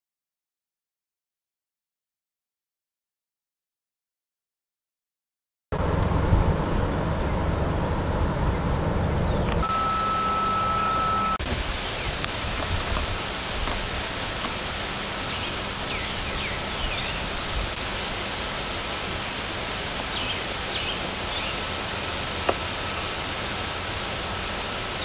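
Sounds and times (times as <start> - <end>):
low rumble: 5.8 - 9.7
steady outdoor rushing noise: 5.8 - 25.0
bird chirps: 9.2 - 11.2, 15.3 - 17.5
steady high tone: 9.6 - 11.4.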